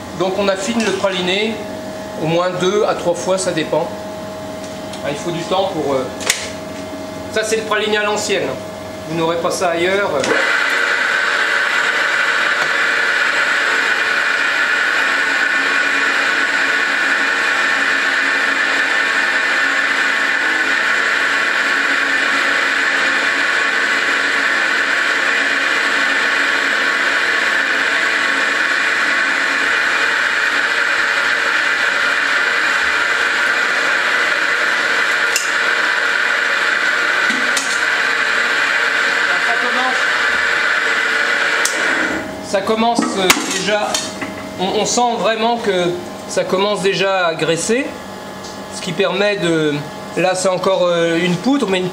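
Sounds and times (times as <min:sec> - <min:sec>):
roller mill grinding with hum: 0:00.0 - 0:51.9.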